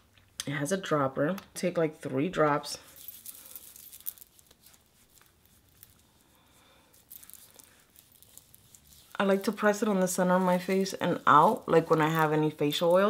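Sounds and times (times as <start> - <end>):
hands rustling: 2.8 - 13.0.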